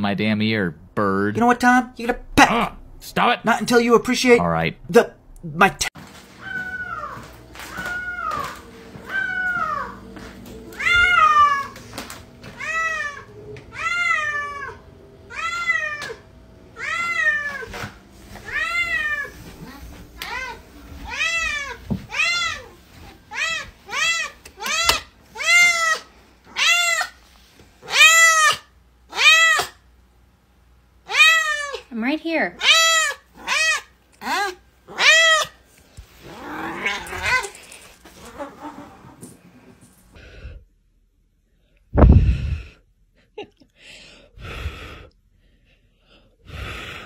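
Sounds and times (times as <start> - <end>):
cat meowing: 6.4 - 10.0, 10.7 - 11.8, 12.6 - 16.2, 18.4 - 22.7, 32.6 - 35.6, 36.4 - 37.5.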